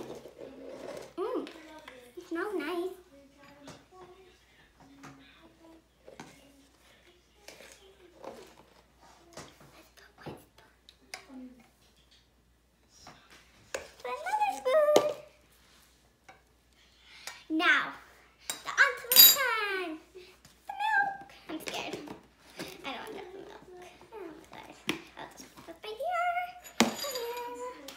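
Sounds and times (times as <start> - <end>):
girl's wordless voice: 14.0 - 15.4, 17.5 - 27.9
metal spoon clinking and scraping: 18.5 - 19.5.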